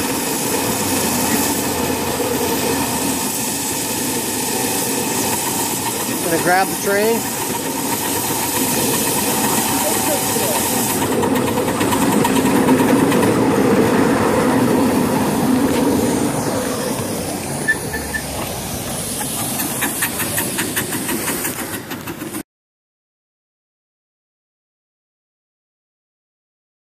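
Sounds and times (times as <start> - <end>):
miniature train rolling on track: 0.0 - 22.4
steam hiss: 0.0 - 22.4.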